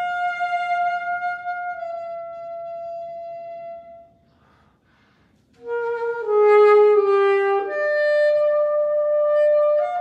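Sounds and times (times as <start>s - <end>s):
saxophone long high note: 5.6s - 10.0s.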